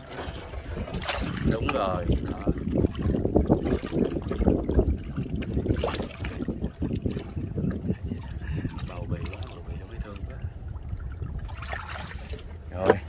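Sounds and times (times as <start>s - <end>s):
irregular splashes: 0.0s - 13.0s
water sloshing in plastic basin: 0.0s - 13.0s.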